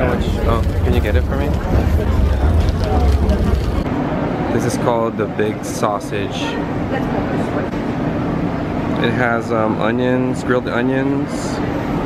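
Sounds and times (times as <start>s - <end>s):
steady low rumble: 0.0s - 4.7s
faint background chatter: 0.0s - 8.2s.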